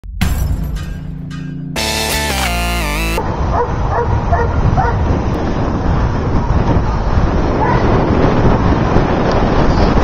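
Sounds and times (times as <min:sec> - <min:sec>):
music track: 0:00.2 - 0:03.2
wind and riding noise: 0:03.2 - 0:10.0.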